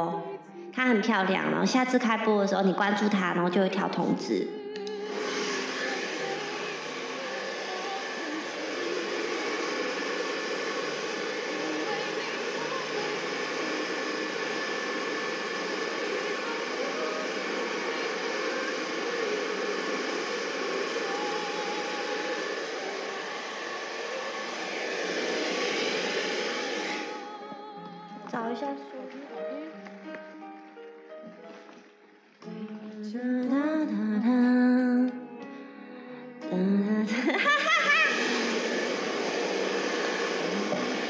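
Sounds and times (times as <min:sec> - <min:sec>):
electric blower rushing air: 0:04.8 - 0:27.6, 0:37.2 - 0:41.0.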